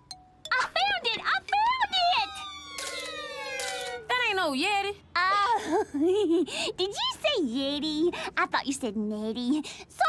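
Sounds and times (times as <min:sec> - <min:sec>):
cartoon siren-like gliding tone: 0:01.9 - 0:04.1.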